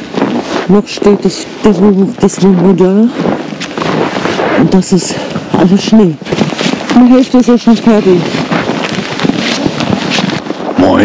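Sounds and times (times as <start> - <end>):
snow being shovelled: 0.0 - 10.9
wind buffeting microphone: 0.0 - 11.0.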